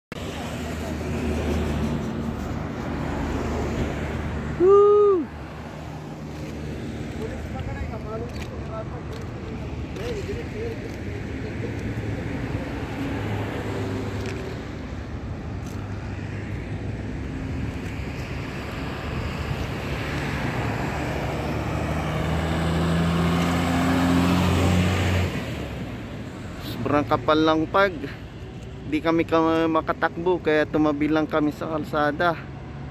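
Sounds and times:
vehicle approaching: 0.1 - 28.1
highway traffic hum and tyre noise: 0.1 - 32.9.

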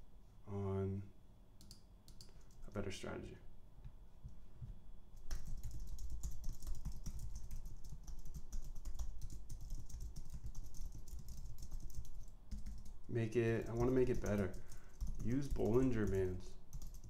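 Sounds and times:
fast typing on keyboard: 5.2 - 17.0.

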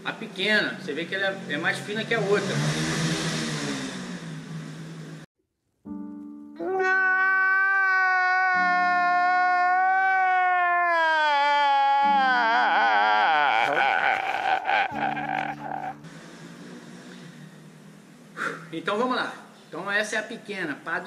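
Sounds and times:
man wailing and sobbing: 6.6 - 16.0.

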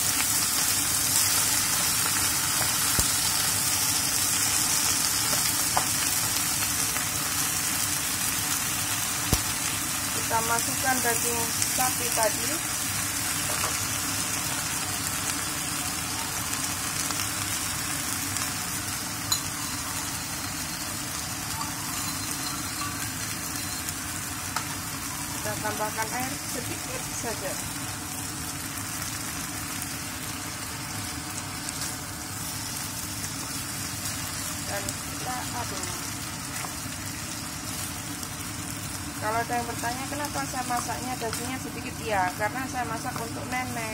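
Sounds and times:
meat and vegetables sizzling in pan: 0.0 - 43.9.

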